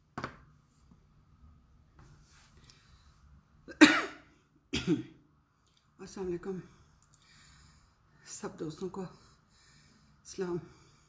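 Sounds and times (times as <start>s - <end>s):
woman coughing: 3.7s - 5.2s.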